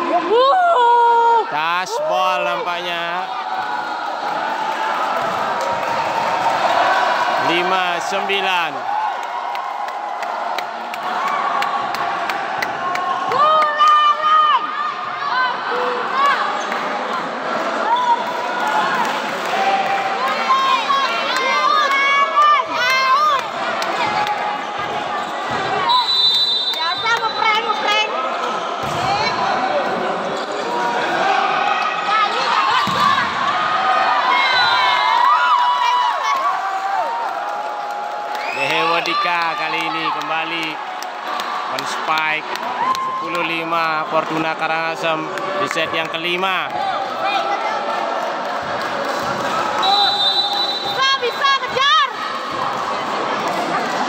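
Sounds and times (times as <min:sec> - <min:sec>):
steady high whistle: 0:25.9 - 0:27.8, 0:49.8 - 0:51.0
volleyball hits and court knocks: 0:28.8 - 0:29.4, 0:32.7 - 0:33.6.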